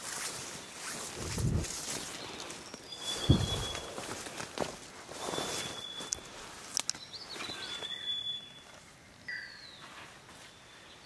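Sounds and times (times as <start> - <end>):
footsteps through undergrowth: 0.0 - 8.0, 9.7 - 10.9
thin high call: 5.1 - 6.6, 7.3 - 10.9.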